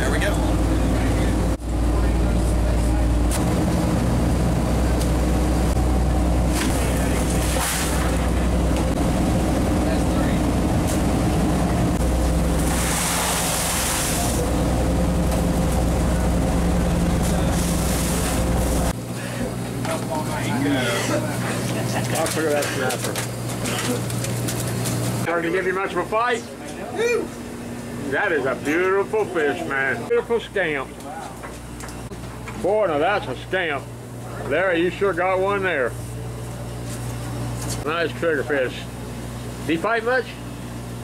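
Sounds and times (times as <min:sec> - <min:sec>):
boat engine droning: 0:00.0 - 0:41.0.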